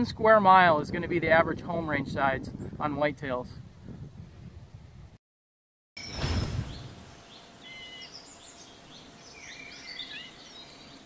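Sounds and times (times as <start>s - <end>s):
small birds chirping: 6.1s - 11.0s.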